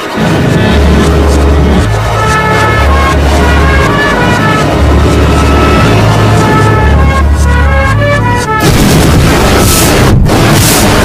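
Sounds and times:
distorted noisy cacophony: 0.0 - 11.0.

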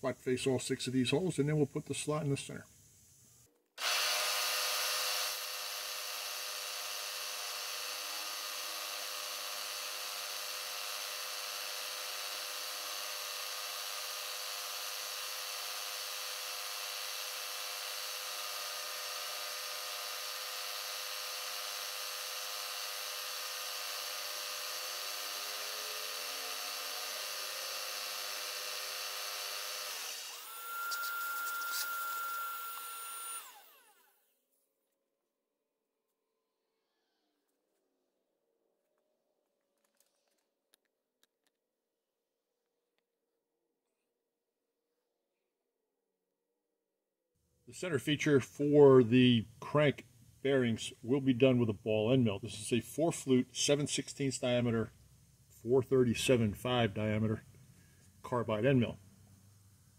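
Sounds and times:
milling machine running: 3.8 - 34.1.

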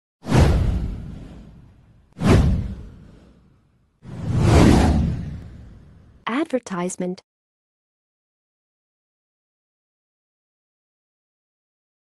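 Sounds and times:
whoosh sound effects: 0.2 - 3.5, 4.1 - 6.0.

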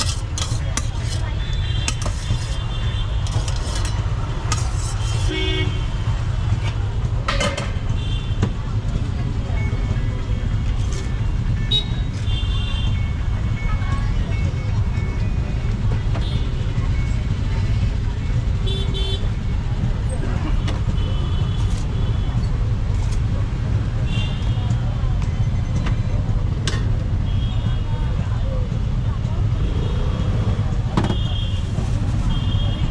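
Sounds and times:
street traffic rumbling: 0.0 - 32.9
vehicle horn toots: 5.2 - 5.8.

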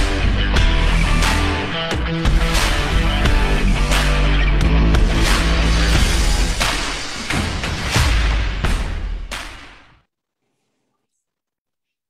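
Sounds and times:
soundtrack music: 0.0 - 9.9.

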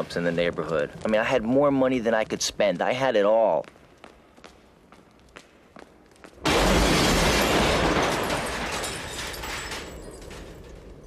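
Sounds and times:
footsteps on a street: 0.0 - 6.4.

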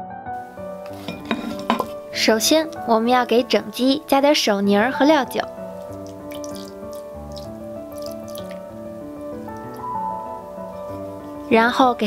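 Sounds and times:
background music: 0.0 - 12.0
liquid splashing onto chicken: 5.8 - 9.9.

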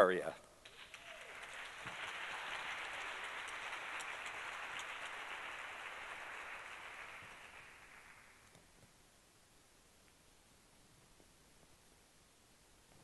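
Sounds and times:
audience applauding: 0.7 - 8.6.

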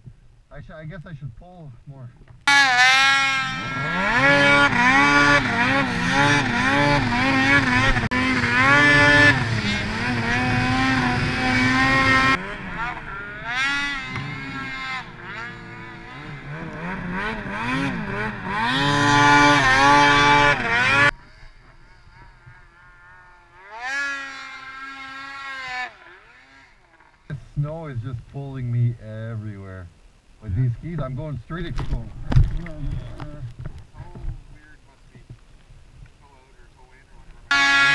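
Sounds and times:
snowmobile engine revving: 2.5 - 34.2, 36.4 - 37.9.

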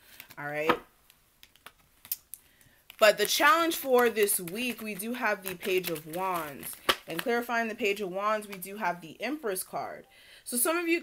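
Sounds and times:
cards clicking and tapping: 0.1 - 8.7.

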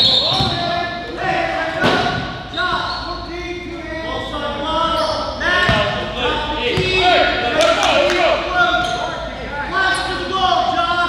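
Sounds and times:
indistinct echoing voices: 0.0 - 11.0.

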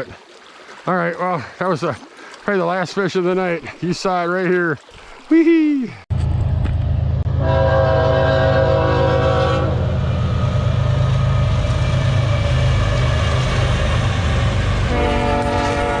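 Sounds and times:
locomotives rumbling past: 6.1 - 16.0
locomotive horn chord: 7.2 - 13.8, 14.6 - 16.0.

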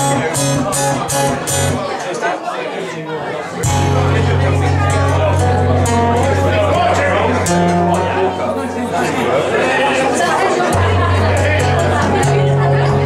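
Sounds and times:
fingerstyle acoustic guitar: 0.0 - 1.9, 3.6 - 13.0.

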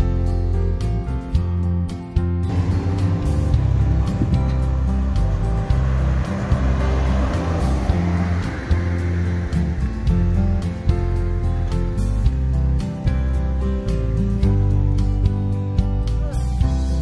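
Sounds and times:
background music: 0.0 - 17.0
car passing: 2.5 - 14.4.

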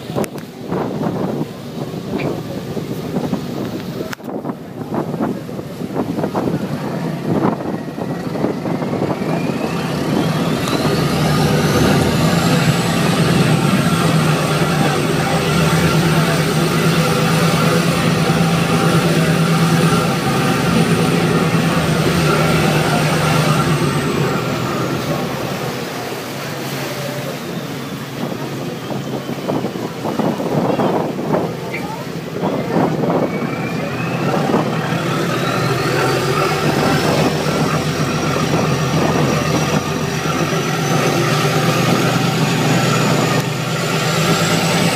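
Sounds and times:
boat engine whining: 0.0 - 44.9
rushing water: 0.0 - 44.9
wind: 0.0 - 44.9.

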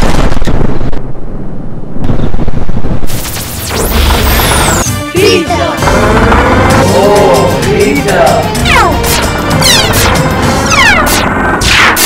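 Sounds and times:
dramatic music: 3.5 - 12.0.

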